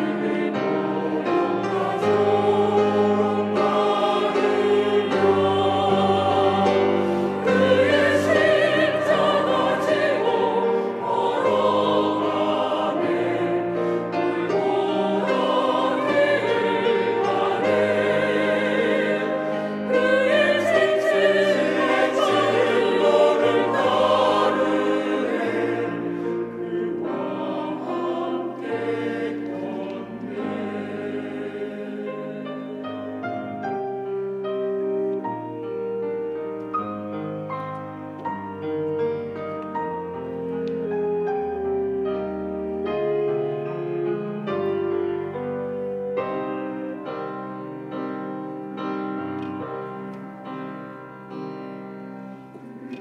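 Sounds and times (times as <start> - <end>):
choir singing in harmony: 0.0 - 53.0.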